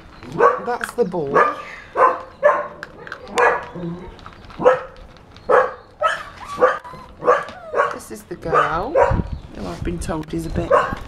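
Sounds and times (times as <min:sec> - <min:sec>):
dog barking: 0:00.4 - 0:00.7, 0:01.3 - 0:09.3, 0:10.7 - 0:11.0.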